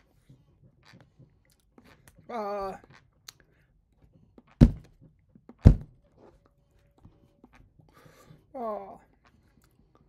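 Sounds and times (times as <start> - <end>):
dull thumps of hands: 4.6 - 4.9, 5.6 - 5.9.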